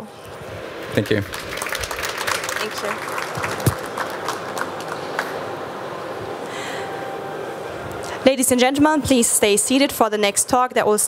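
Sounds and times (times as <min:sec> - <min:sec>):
busy exhibition hall background: 0:00.0 - 0:11.0
applause: 0:00.9 - 0:05.6.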